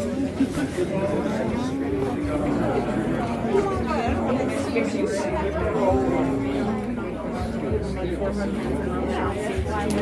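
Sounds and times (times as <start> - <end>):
several voices chattering: 0.0 - 10.0.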